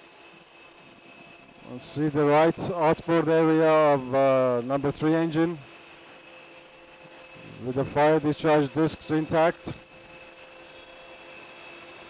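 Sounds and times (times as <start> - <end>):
turbine machinery hiss and whine: 0.0 - 12.0.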